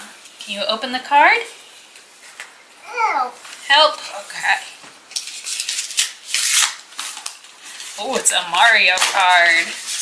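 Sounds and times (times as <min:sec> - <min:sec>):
paper envelope tearing: 0:05.2 - 0:07.4.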